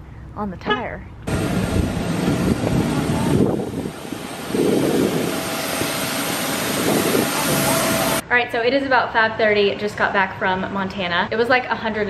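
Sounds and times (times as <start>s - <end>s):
jet airliner engine whine: 1.3s - 8.2s.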